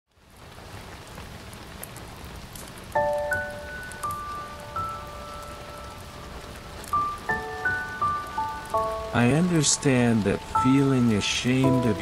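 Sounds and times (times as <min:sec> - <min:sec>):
rain patter: 0:00.1 - 0:12.0.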